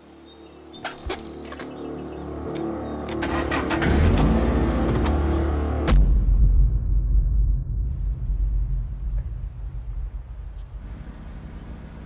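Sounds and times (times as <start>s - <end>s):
music: 0.0s - 9.4s
car engine running: 1.2s - 6.0s, 9.8s - 12.0s.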